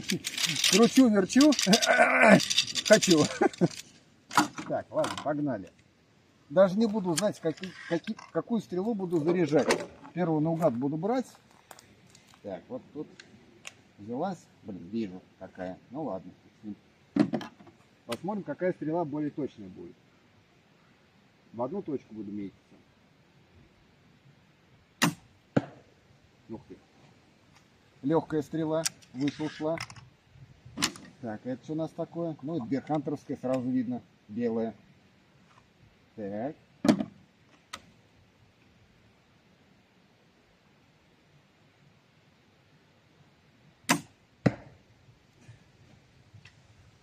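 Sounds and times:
bolt striking target: 25.0 - 25.8, 43.9 - 44.8
crossbow shot crack: 25.0 - 25.9, 43.9 - 44.8.

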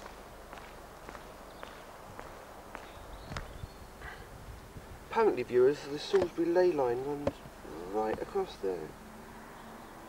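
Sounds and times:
footsteps on wet pavement: 0.0 - 3.6, 6.0 - 6.5, 8.0 - 8.4.

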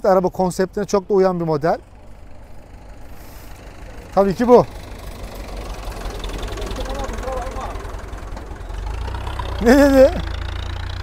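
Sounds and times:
tractor engine running: 0.0 - 11.0.

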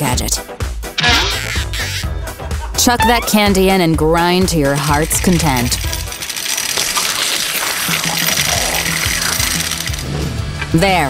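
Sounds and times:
background music: 0.0 - 11.0
hand-cranked grinder grinding: 4.4 - 10.1.

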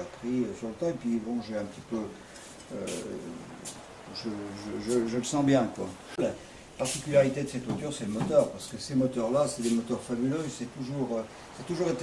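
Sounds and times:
faint clicks or breaths: 2.2 - 2.7.

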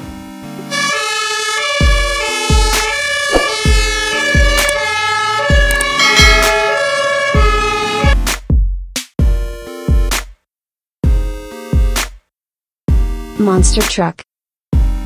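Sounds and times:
fire engine siren: 0.7 - 8.2
music with steady drum beat: 8.1 - 10.4, 11.0 - 12.2, 12.9 - 13.9.

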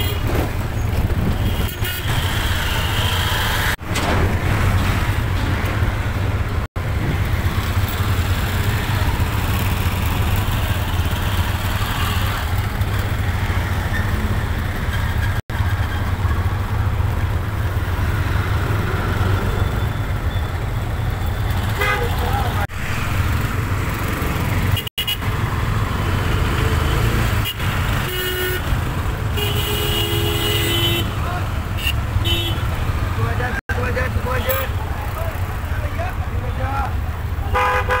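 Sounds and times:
vehicle horns honking: 0.0 - 0.3, 1.4 - 3.8, 21.6 - 22.6, 27.4 - 32.8, 37.5 - 38.0
street traffic rumble: 0.0 - 38.0.

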